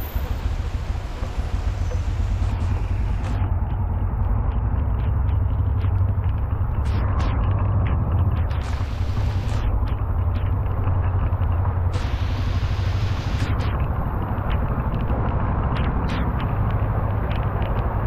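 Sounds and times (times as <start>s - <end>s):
deep rumble: 0.0s - 18.0s
heavy rain pouring: 8.6s - 9.6s, 11.9s - 13.6s.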